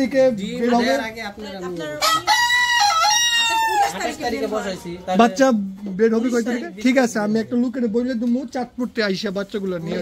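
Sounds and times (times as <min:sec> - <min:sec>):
rooster crowing: 0:02.0 - 0:04.2.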